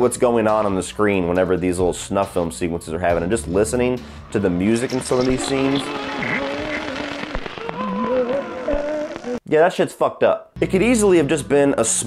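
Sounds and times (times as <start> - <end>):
man humming eerie tune: 5.2 - 9.5.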